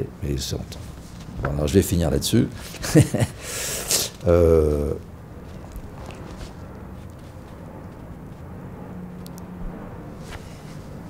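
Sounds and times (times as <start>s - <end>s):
low rumble and hum: 4.1s - 11.0s.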